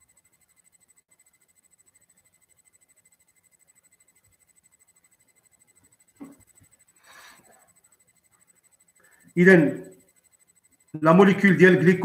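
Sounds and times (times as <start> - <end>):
faint high whine: 0.0 - 12.0.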